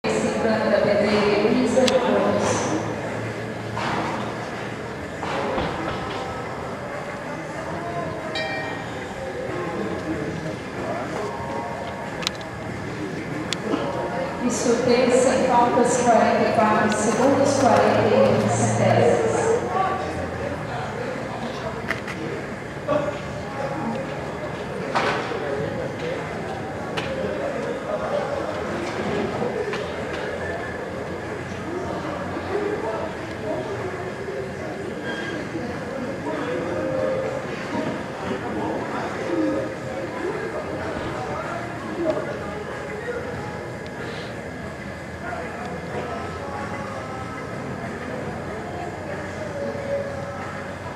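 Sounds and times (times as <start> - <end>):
distant voices: 0.0 - 50.9
rumbling background noise: 0.0 - 50.9
steady rumbling noise: 9.1 - 23.4.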